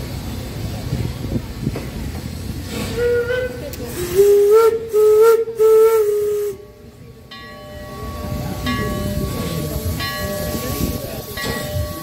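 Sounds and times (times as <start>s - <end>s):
steam locomotive whistle: 2.7s - 6.8s.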